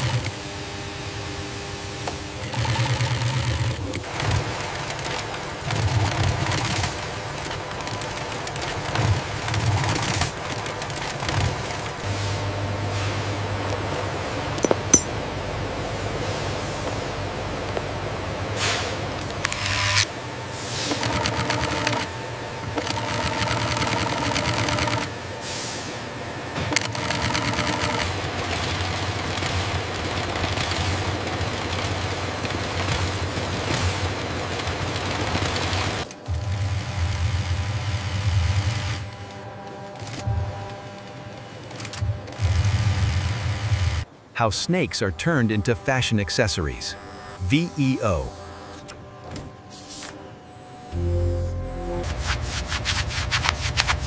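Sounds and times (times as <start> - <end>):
industrial sewing machines running: 0.0 - 13.6, 15.5 - 44.1
light music: 50.8 - 53.7.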